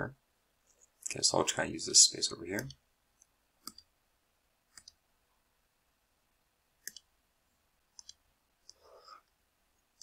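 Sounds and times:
computer mouse clicking: 2.6s - 3.9s, 4.7s - 5.0s, 6.8s - 7.1s, 7.9s - 9.4s.

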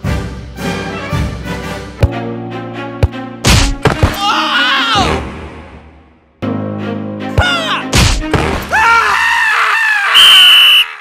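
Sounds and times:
cartoon scream of pain: 4.1s - 5.2s, 8.7s - 11.0s.

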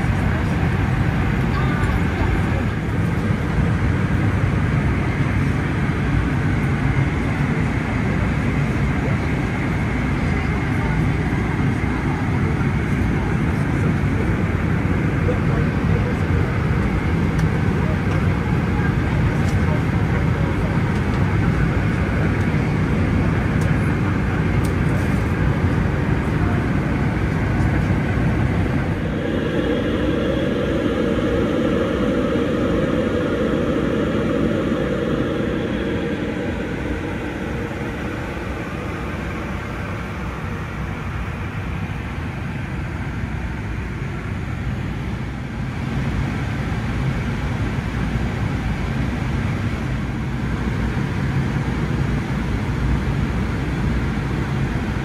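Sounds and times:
airliner cabin engine noise: 0.0s - 55.0s.

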